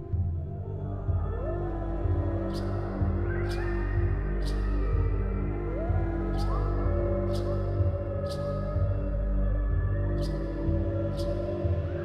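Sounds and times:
low sustained drones: 0.0s - 12.0s.

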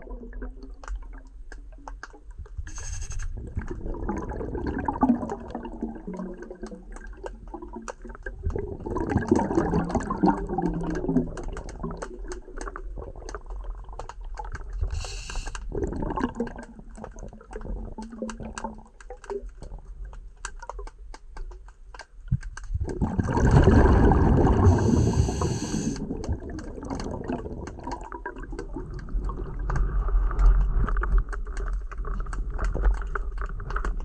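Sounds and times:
underwater gurgling and swishing: 0.0s - 34.0s
small clicks: 0.7s - 3.3s, 9.3s - 15.7s, 16.4s - 23.0s, 25.4s - 34.0s
short hiss: 2.7s - 3.3s, 14.9s - 15.6s, 24.7s - 26.0s.

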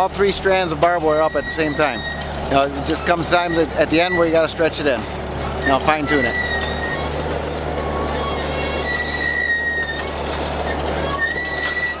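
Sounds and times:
wire squealing over metal rollers: 0.0s - 12.0s.

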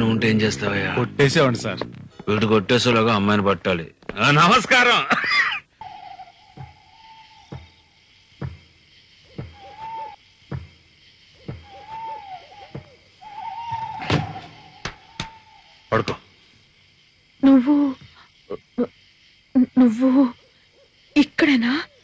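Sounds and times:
wavering hoot-like tone: 5.8s - 7.7s, 9.2s - 10.2s, 11.3s - 15.9s
sharp knocks: 8.4s - 8.7s, 10.5s - 10.8s.

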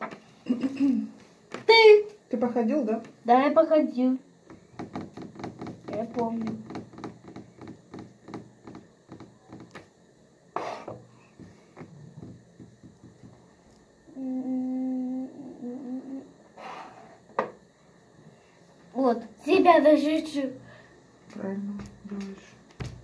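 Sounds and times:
person humming: 14.1s - 16.4s.

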